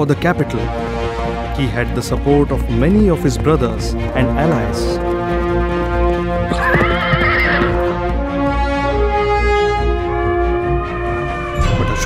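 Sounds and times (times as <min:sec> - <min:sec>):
background music with held notes: 0:00.0 - 0:12.0
horses galloping: 0:02.0 - 0:09.0
horse neighing: 0:06.4 - 0:08.1.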